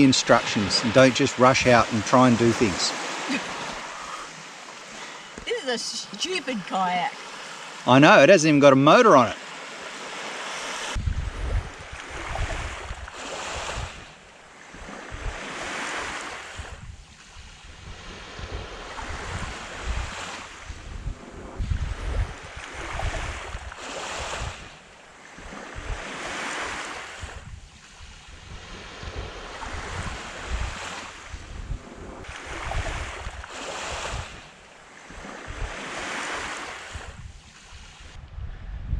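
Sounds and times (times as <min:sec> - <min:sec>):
small waves washing onto shore: 0:00.0 - 0:38.2
wind buffeting microphone: 0:10.8 - 0:38.9.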